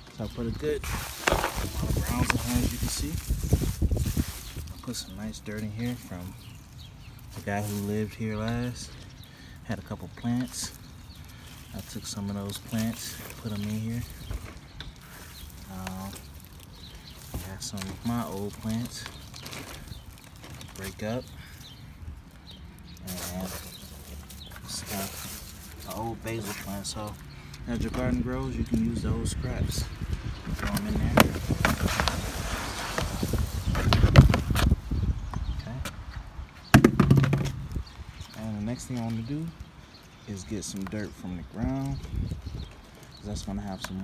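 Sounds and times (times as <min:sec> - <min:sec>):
dry roots and grass crackling: 0:00.0 - 0:44.0.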